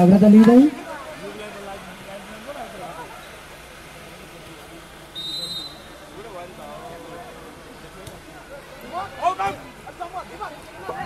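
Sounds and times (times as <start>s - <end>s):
faint crowd chatter: 0.0s - 11.0s
referee's whistle blast: 5.1s - 6.0s.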